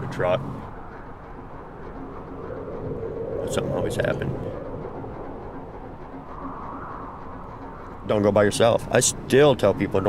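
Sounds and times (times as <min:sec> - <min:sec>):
low wind rushing: 0:00.0 - 0:10.0.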